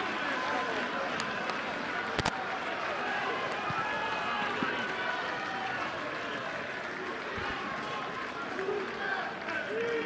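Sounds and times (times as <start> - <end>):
players shouting and talking: 0.0 - 10.0.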